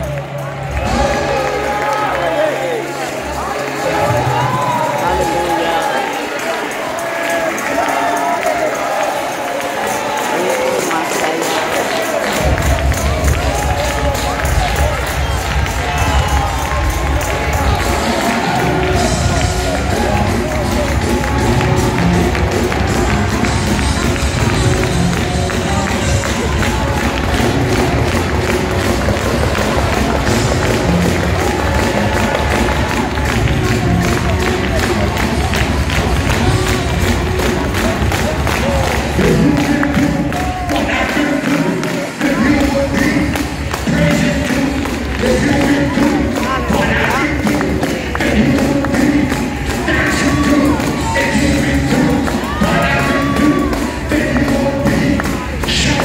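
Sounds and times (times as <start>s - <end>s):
live church praise music: 0.0s - 56.0s
congregation voices crying out: 0.8s - 56.0s.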